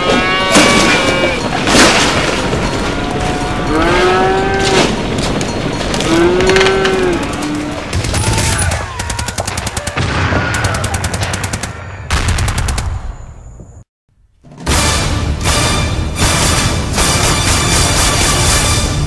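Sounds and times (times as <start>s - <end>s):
low animal bellows: 2.7s - 5.0s, 6.0s - 7.9s
rapid machine-gun fire: 7.9s - 13.0s.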